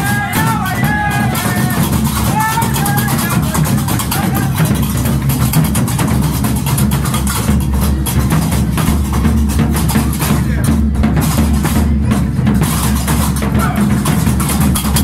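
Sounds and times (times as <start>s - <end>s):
iron castanets clacking rapidly: 0.0s - 10.5s, 12.6s - 15.0s
large drum beat: 0.0s - 15.0s.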